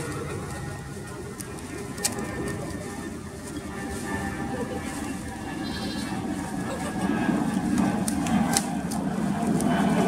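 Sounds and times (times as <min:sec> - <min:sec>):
goats bleating: 0:05.6 - 0:06.2.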